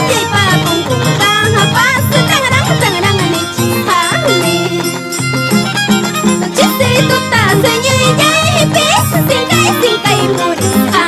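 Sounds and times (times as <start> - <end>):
violin melody with vibrato: 0.0 - 11.0.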